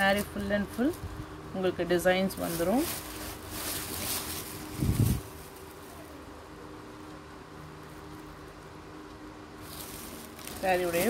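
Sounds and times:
faint steady hum: 0.0s - 11.0s
fabric rustling: 2.0s - 6.3s, 9.6s - 11.0s.

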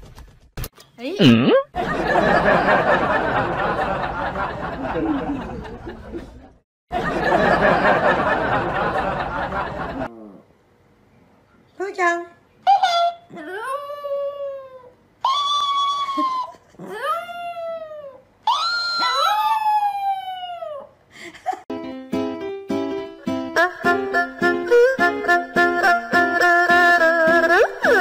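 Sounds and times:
small dog howling and yelping: 13.4s - 20.9s
light bouncy background music: 21.7s - 28.0s.

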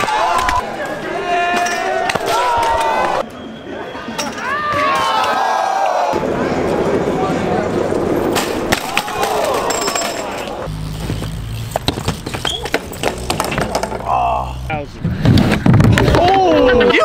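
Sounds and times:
onlookers yelling: 0.0s - 3.2s, 4.4s - 6.4s, 8.8s - 10.7s
wheels and boards clattering on concrete: 8.3s - 14.2s, 15.1s - 16.4s.

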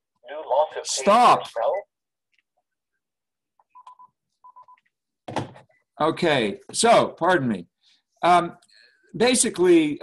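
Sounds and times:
automated voice on phone: 0.2s - 1.9s.

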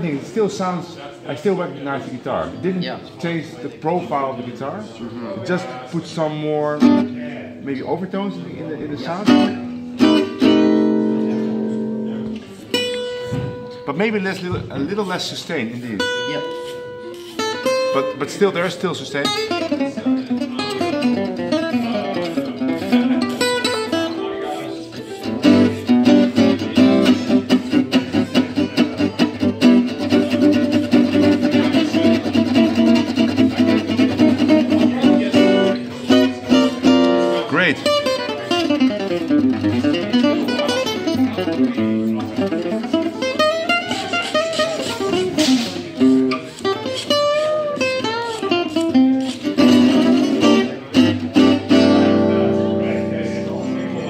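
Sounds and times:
acoustic guitar played with pick: 5.4s - 54.0s.

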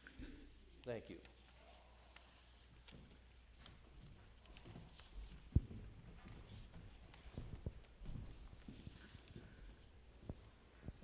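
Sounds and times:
soft footsteps on floor: 2.1s - 11.0s.

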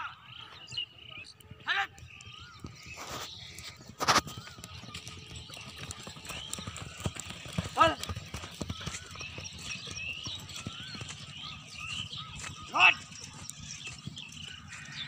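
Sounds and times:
horses galloping on dirt: 0.3s - 15.0s.

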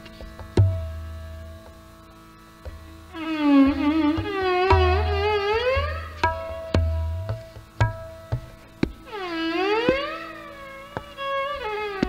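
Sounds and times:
tabla strokes: 0.0s - 12.0s
bowed violin sliding note: 2.7s - 8.4s, 9.0s - 12.0s.

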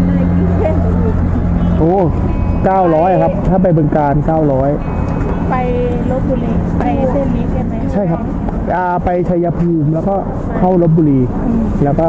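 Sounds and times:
person speaking: 0.0s - 4.8s, 5.4s - 12.0s
motor humming: 0.0s - 8.8s.

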